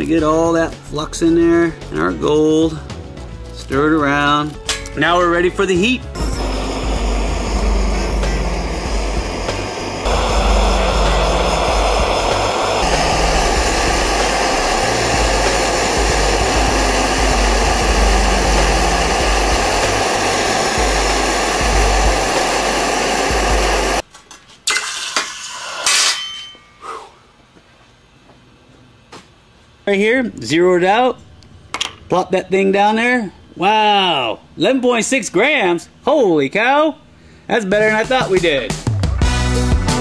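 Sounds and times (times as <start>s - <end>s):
background music: 0.0s - 24.0s, 38.6s - 40.0s
gas torch running: 5.0s - 24.0s.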